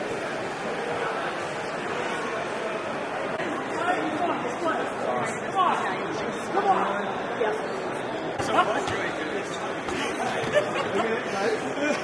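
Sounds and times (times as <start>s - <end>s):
crowd chatter in echoing hall: 0.0s - 12.0s.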